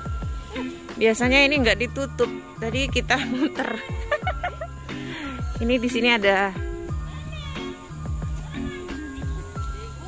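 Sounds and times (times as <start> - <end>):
lo-fi music with steady beat: 0.0 - 10.0.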